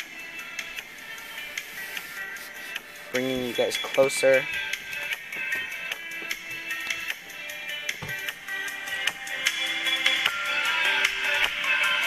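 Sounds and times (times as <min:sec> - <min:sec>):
music leaking from headphones: 0:00.0 - 0:12.0.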